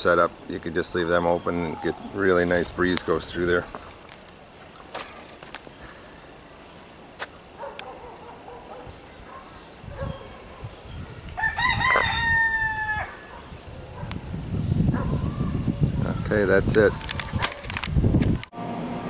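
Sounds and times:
rooster crowing: 0:11.4 - 0:13.4.

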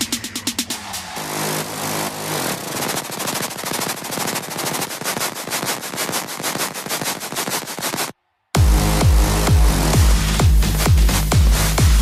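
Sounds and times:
electronic dance music drum roll: 0:00.0 - 0:12.0.

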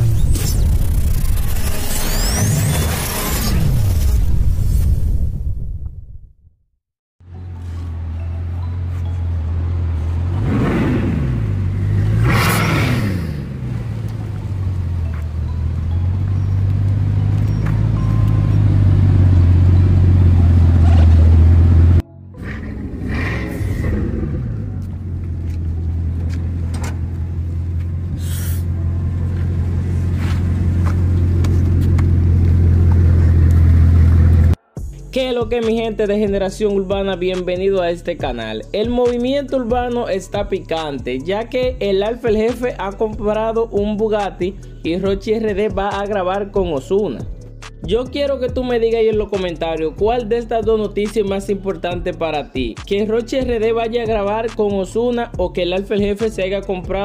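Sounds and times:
car engine revving: 0:00.0 - 0:04.4, 0:08.8 - 0:34.6.

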